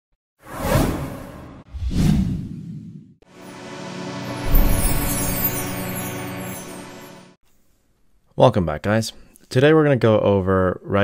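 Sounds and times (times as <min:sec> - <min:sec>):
whoosh sound effects: 0:00.5 - 0:06.9.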